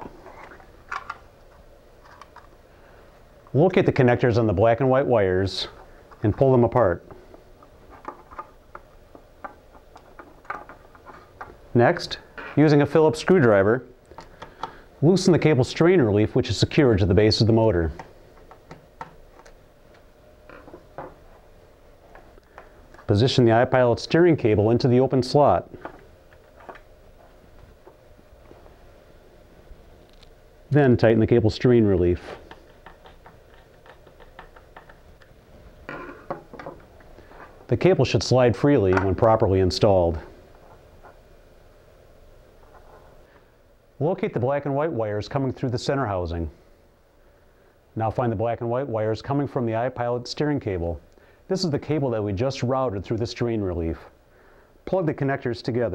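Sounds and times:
faint clicks and rustles of wires: 0.0s - 3.7s, 5.6s - 11.7s, 13.4s - 14.9s, 17.8s - 23.3s, 25.7s - 28.9s, 30.0s - 30.4s, 32.0s - 38.0s.

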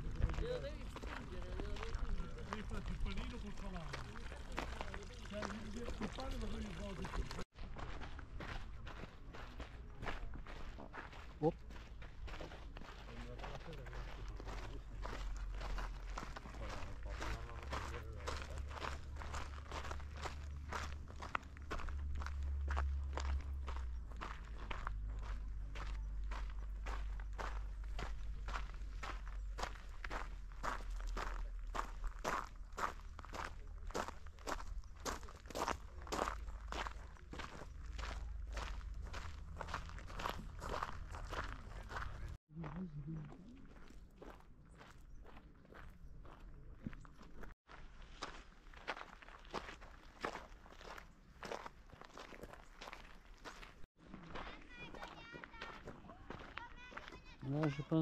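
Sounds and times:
footsteps on gravel: 0.0s - 58.0s.

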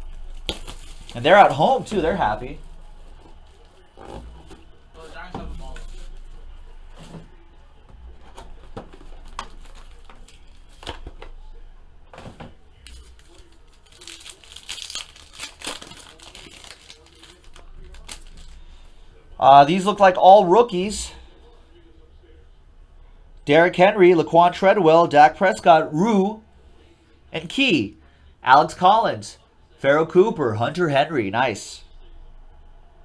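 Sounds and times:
cardboard and plastic crinkling: 0.0s - 7.3s, 8.2s - 11.4s, 12.1s - 18.7s.

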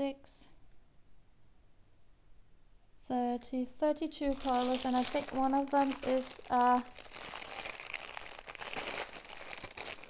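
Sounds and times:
plastic bag crinkling: 4.2s - 10.0s.

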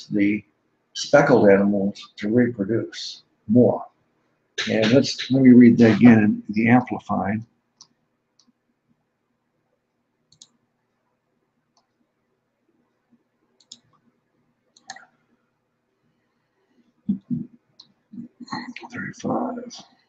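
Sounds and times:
faint steady hum: 0.0s - 20.0s
computer mouse clicking: 10.3s - 10.6s, 13.6s - 14.0s, 14.8s - 15.1s.

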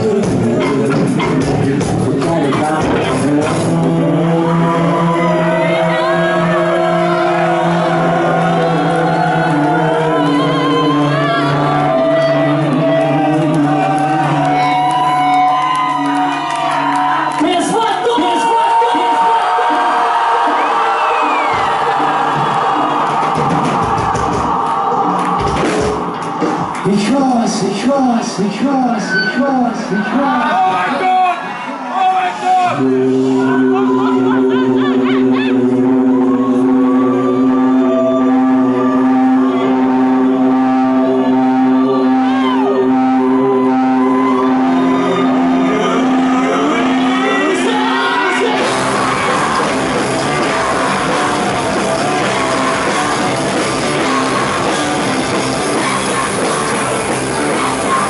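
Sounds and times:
drums: 0.0s - 4.5s, 19.0s - 28.3s, 47.6s - 58.0s
bass guitar: 0.0s - 17.4s, 32.7s - 58.0s
distorted electric guitar: 0.0s - 17.4s, 32.7s - 58.0s
audience: 0.0s - 58.0s
rock band droning chord: 32.7s - 58.0s.

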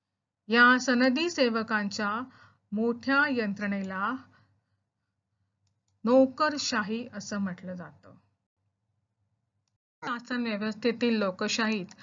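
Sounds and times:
woman narrating: 0.5s - 4.4s, 6.0s - 8.2s, 10.0s - 12.0s.

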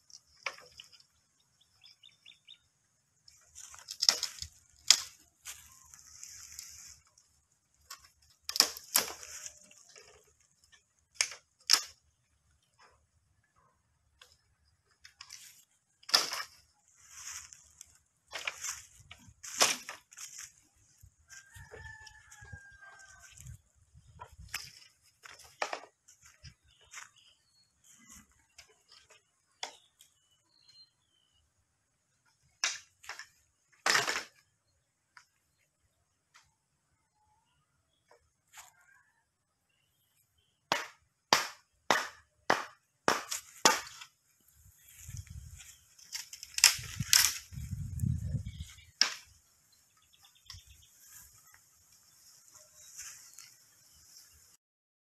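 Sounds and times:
bamboo poles knocking together: 0.0s - 1.2s, 3.3s - 13.0s, 14.1s - 20.7s, 23.2s - 27.1s, 32.2s - 34.5s, 40.7s - 44.2s, 44.9s - 49.6s
rooster crowing: 21.3s - 23.5s
blade chopping bamboo: 40.7s - 44.0s.

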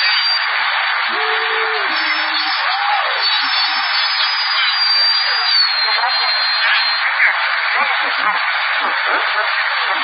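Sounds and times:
radio receiver hiss: 0.0s - 10.0s
thin high whistle: 1.9s - 7.1s.

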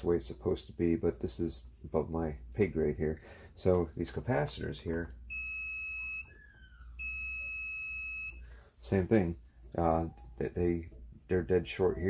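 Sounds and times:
high-pitched multimeter beep: 5.3s - 8.4s.

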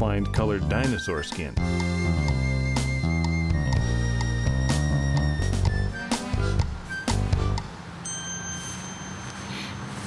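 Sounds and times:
high bell-like ding: 8.0s - 9.9s.

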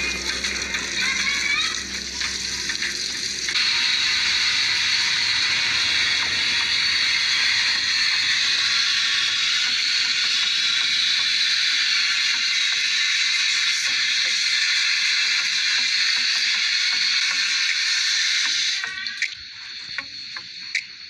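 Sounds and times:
water spraying under pressure: 0.0s - 20.8s.

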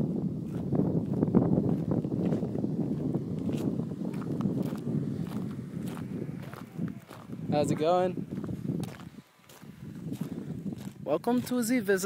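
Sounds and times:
footsteps on dirt and gravel: 0.4s - 11.8s.

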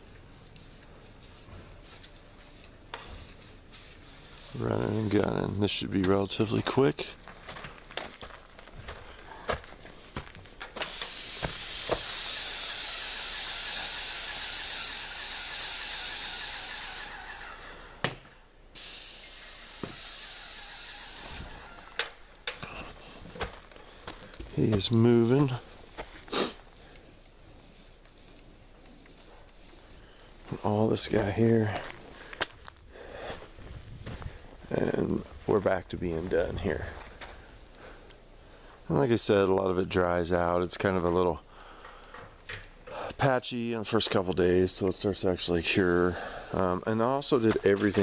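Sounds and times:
footsteps on gravel: 6.6s - 12.1s, 22.6s - 28.2s, 29.2s - 37.6s
paint spray gun hissing: 10.8s - 17.7s, 18.8s - 22.2s, 45.8s - 46.8s.

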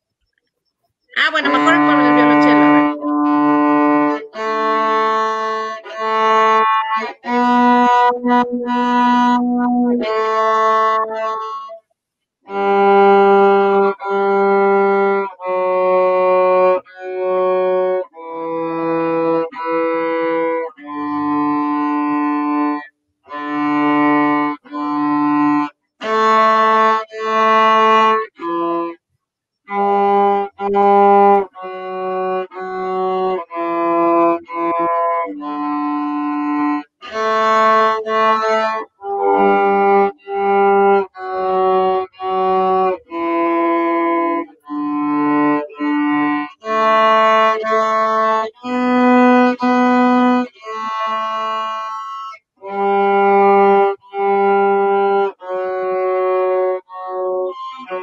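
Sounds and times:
cello bowed melody: 1.2s - 11.8s, 12.5s - 28.9s, 29.7s - 58.0s.

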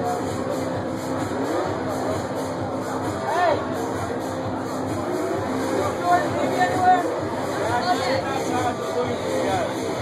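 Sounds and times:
loud dance music: 0.0s - 10.0s.

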